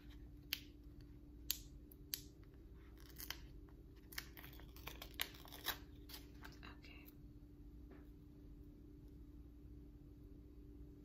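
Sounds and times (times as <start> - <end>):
steady low hum: 0.0 - 11.0
sticker paper crackling and snapping: 2.9 - 6.6.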